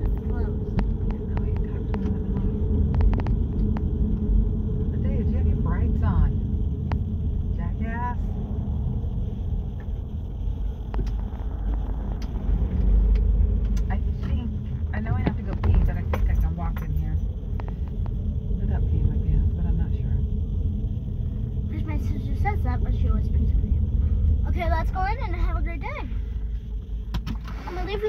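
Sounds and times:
car road and engine rumble: 0.0 - 28.0.

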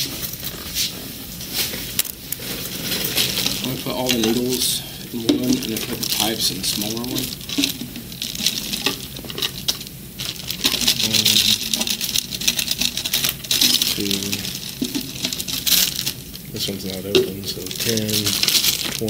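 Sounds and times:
plastic bags crinkling: 0.0 - 19.0
small objects clicking on a desk: 5.2 - 16.2
low mumbled voices: 11.0 - 11.7.

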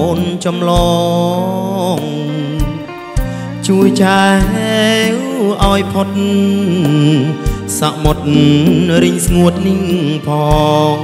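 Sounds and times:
live band playing: 0.0 - 11.0
man singing into microphone: 0.0 - 11.0
drum hits: 8.0 - 9.7.

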